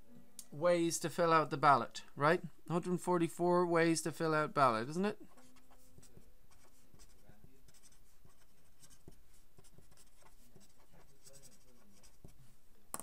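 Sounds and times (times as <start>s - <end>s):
marker writing on paper: 5.2s - 12.5s.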